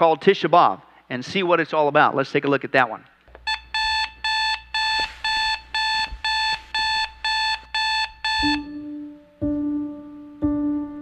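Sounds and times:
smartphone alarm beeping: 3.5 - 8.8.

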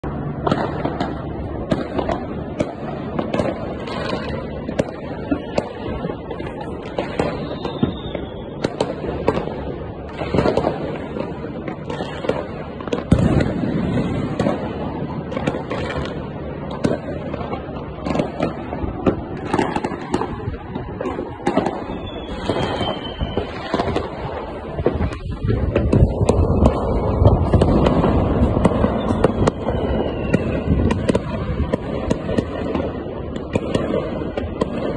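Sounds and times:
distant fireworks rumbling: 0.0 - 34.9
low background noise: 0.0 - 34.9
sharp firework cracks: 0.0 - 34.9.

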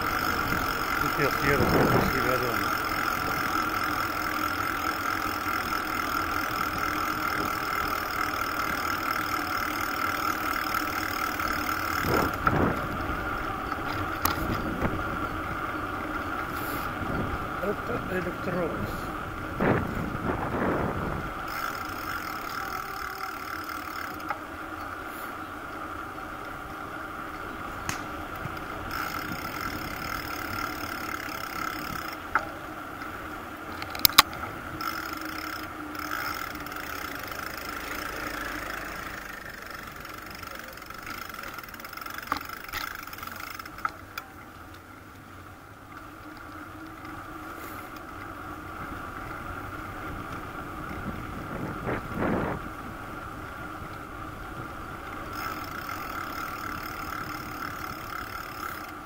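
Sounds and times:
sharp bicycle clicks: 0.0 - 17.0, 21.4 - 25.0, 27.2 - 48.4, 53.1 - 59.0
bicycle rolling on asphalt: 0.0 - 59.0.

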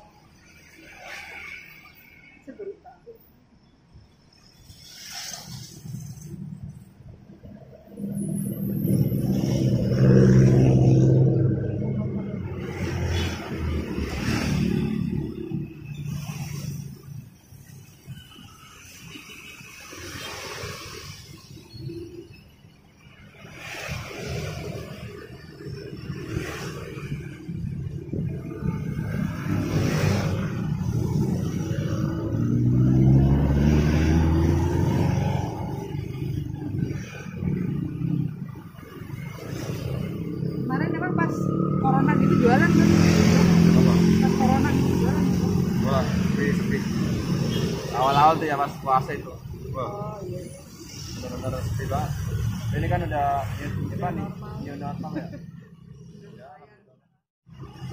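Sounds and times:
vehicles passing on road: 0.0 - 57.9
engine accelerating: 28.5 - 38.4, 39.3 - 48.3.

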